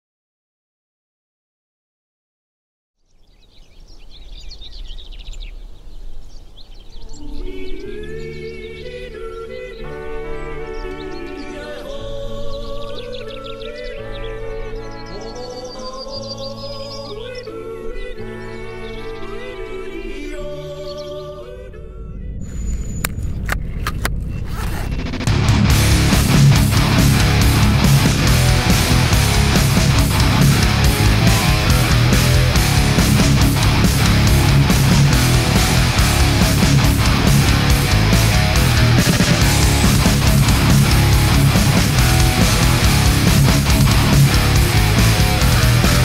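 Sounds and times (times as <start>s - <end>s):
birds chirping: 3.0s - 21.6s, 22.2s - 46.0s
music with long held chords: 7.1s - 22.6s, 25.2s - 46.0s
low outdoor rumble: 21.8s - 46.0s
ski binding clicking shut: 23.0s - 24.8s.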